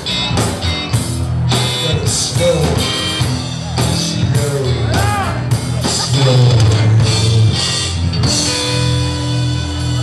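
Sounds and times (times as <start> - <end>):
bass line: 0.0 - 10.0
drum kit steady beat: 0.0 - 10.0
electric guitar: 0.0 - 10.0
keyboard: 0.0 - 10.0.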